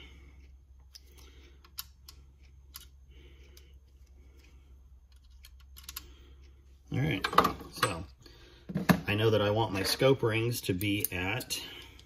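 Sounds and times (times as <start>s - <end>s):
low steady hum: 0.0s - 12.0s
screwdriver bits clicking: 0.8s - 6.1s.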